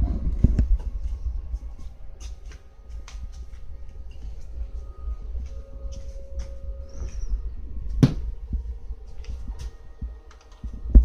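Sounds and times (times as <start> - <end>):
faint steady hum: 0.0 - 11.0
loud thump: 8.0 - 8.3.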